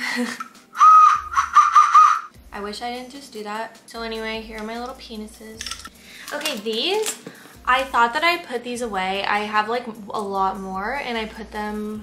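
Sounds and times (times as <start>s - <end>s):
party whistle blasts and toots: 0.8s - 2.3s.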